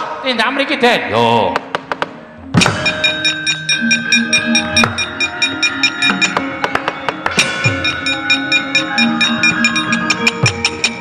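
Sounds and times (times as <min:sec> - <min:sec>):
drum strokes: 0:01.6 - 0:11.0
metallophones and gongs struck: 0:02.5 - 0:11.0.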